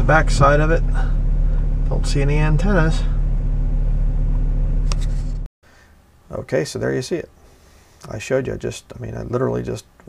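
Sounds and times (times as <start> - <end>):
car interior driving rumble: 0.0 - 5.5.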